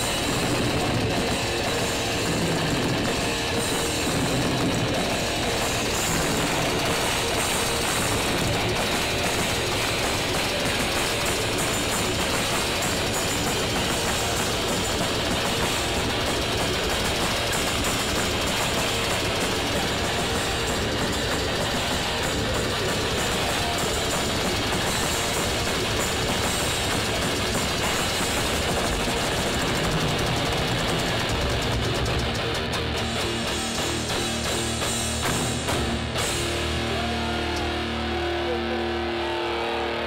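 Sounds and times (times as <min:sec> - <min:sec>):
distorted electric guitar: 0:00.0 - 0:40.0
drums: 0:00.0 - 0:40.0.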